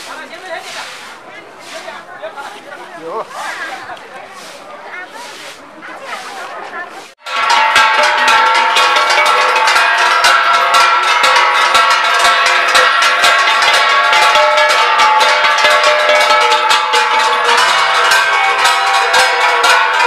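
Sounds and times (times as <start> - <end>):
stick beating metal plate: 7.2 - 20.0.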